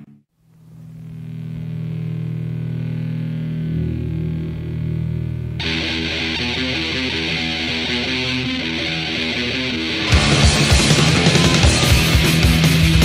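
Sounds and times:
distorted guitar and bass chords: 0:00.0 - 0:13.0
drums and cymbals: 0:10.0 - 0:13.0.

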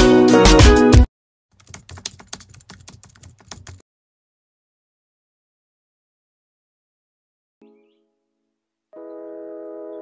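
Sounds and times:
computer keyboard typing: 0:01.6 - 0:03.8.

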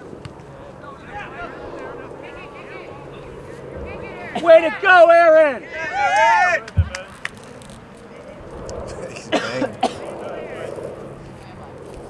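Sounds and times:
faint spectator chatter: 0:00.0 - 0:12.0
person coughing: 0:09.2 - 0:10.1.

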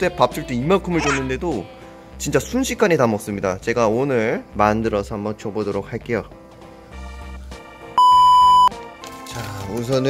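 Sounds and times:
background music: 0:00.0 - 0:10.0
electronic beep: 0:08.0 - 0:08.7.

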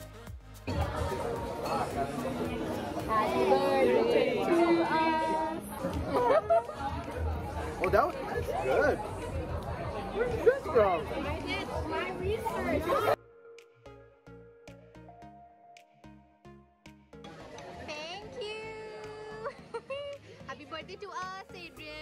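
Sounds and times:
faint music: 0:00.0 - 0:15.9
man and woman chatting: 0:01.1 - 0:13.2
people laughing: 0:05.8 - 0:07.8, 0:19.0 - 0:20.4.

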